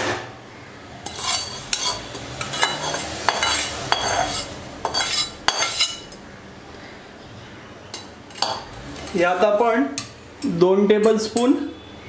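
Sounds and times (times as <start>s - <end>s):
spatula clinking and scraping pan: 1.0s - 6.2s, 7.9s - 9.2s.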